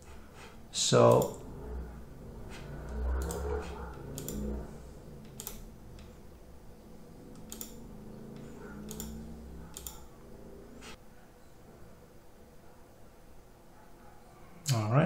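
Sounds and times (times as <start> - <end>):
computer mouse clicking: 1.0 - 1.5, 2.4 - 6.2, 7.3 - 10.1.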